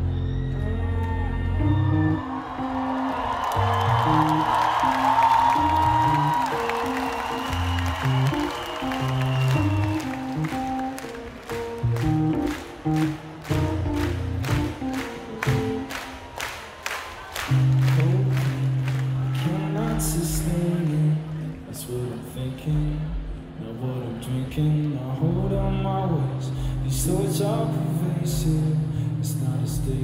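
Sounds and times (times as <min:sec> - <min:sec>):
crowd cheering and applauding: 0:00.0 - 0:22.7
live electronic music: 0:00.0 - 0:30.0.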